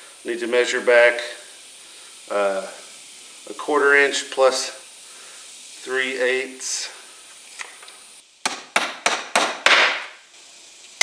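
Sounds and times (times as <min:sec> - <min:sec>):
sharp wooden knocks: 0:08.4 - 0:10.0.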